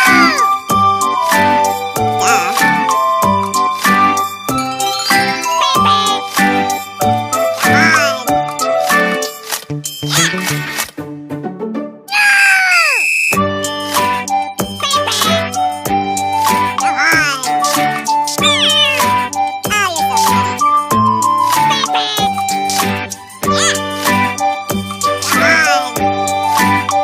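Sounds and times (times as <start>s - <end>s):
squeaky falling cries: 0.0s - 0.5s, 12.1s - 13.3s, 18.4s - 19.2s
upbeat children's music: 0.0s - 12.8s, 13.4s - 27.0s.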